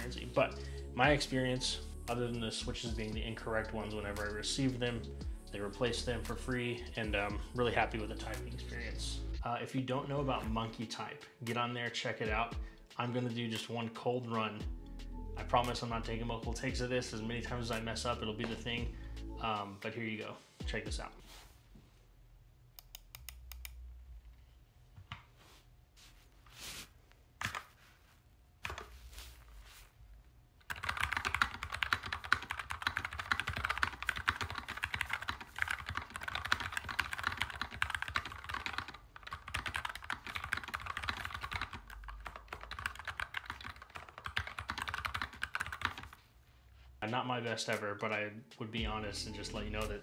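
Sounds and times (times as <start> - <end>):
mechanical keyboard typing: 30.7 - 46.2.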